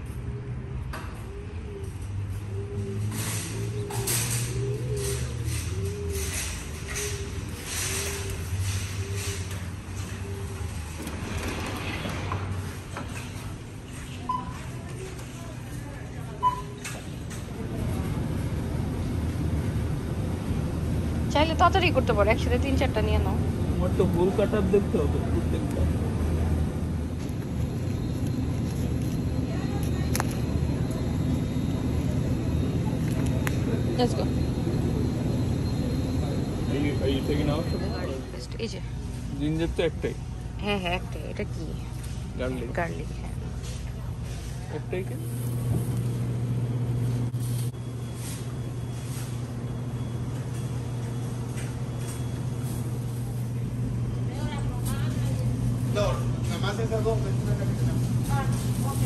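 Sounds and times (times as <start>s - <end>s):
low hum of refrigeration machinery: 0.0s - 59.0s
supermarket background rumble: 0.0s - 59.0s.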